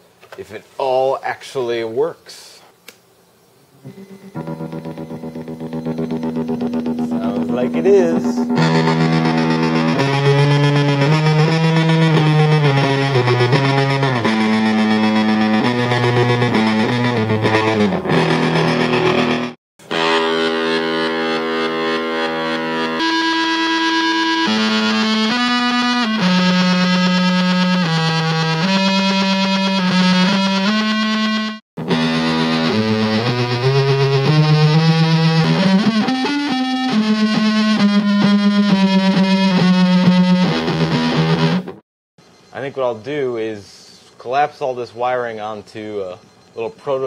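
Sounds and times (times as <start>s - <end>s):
fuzz electric guitar with gating pulse: 3.8s - 41.8s.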